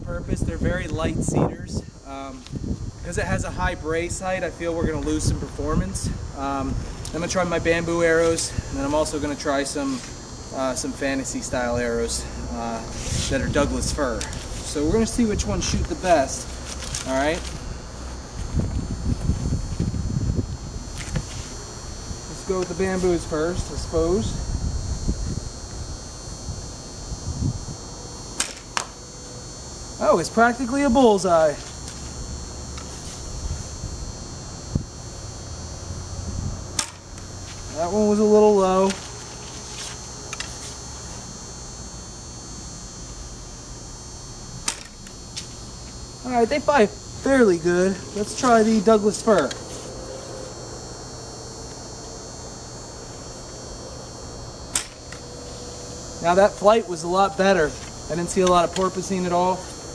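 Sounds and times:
steady low hum: 0.0s - 59.9s
bow string snapping: 28.4s - 28.9s, 36.8s - 37.0s, 44.6s - 45.1s, 54.7s - 55.0s.

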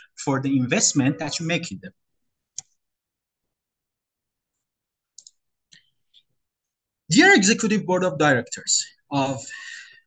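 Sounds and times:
faint computer clicks: 5.1s - 6.2s.

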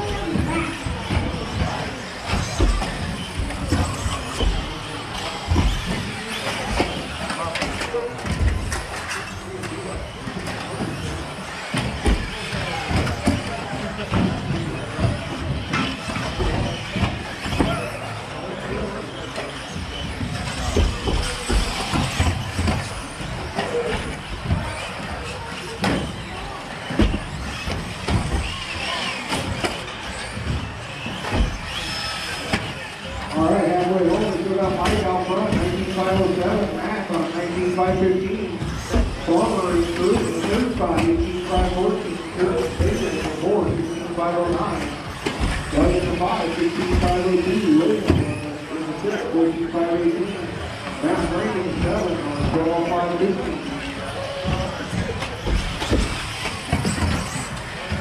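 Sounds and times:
din of voices: 0.0s - 58.0s
rc car motors whining: 0.0s - 58.0s.

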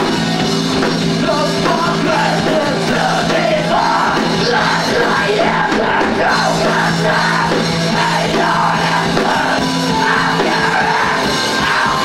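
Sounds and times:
rock band playing live: 0.0s - 12.0s.

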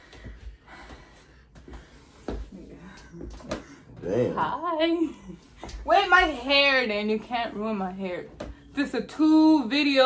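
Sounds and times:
person straining breaths and grunts: 3.3s - 4.6s.

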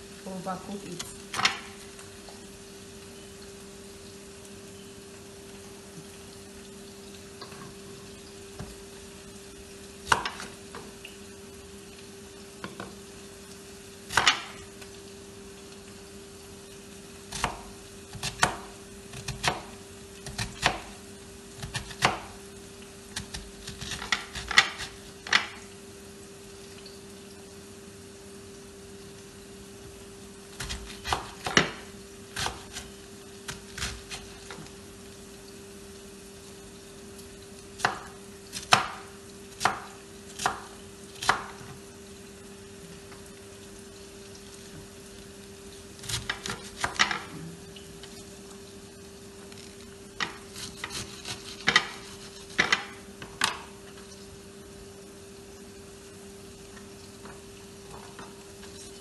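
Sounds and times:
knife chopping cabbage: 17.3s - 20.9s, 21.6s - 22.4s, 30.6s - 32.9s, 50.3s - 53.0s.

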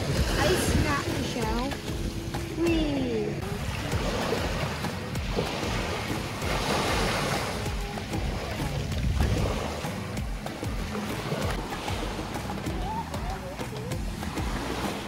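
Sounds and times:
wind rumbling on microphone: 0.0s - 13.4s
small waves breaking: 0.0s - 15.0s.

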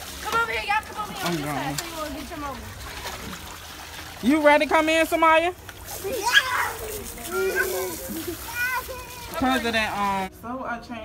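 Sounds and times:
hose water hissing and splashing: 0.0s - 10.3s
children squealing: 6.1s - 9.3s.

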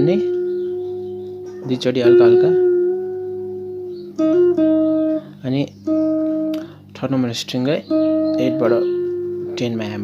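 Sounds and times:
slow guitar lead line: 0.0s - 10.0s.

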